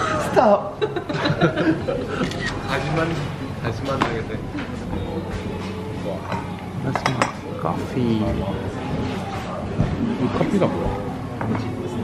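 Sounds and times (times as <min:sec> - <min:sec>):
crockery clinking: 0:06.2 - 0:07.4.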